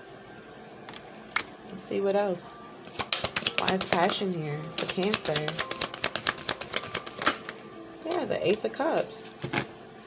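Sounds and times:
cards being shuffled by hand: 2.9s - 7.6s.

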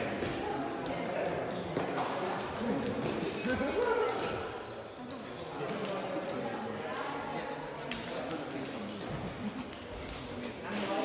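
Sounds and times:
players talking in echoing hall: 0.0s - 11.0s.

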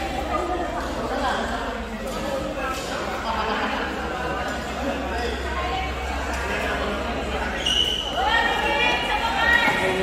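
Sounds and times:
echoing chatter of voices: 0.0s - 10.0s.

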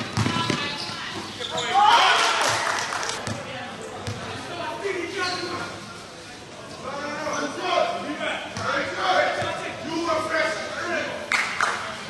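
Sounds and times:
basketball bouncing on court: 0.0s - 1.0s, 3.2s - 4.2s
crowd yelling and cheering: 1.7s - 3.2s.

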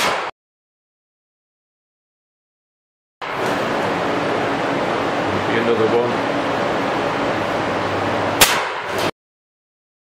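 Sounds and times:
gunshot: 0.0s - 0.4s, 8.4s - 9.1s
fan hum: 3.2s - 9.1s.

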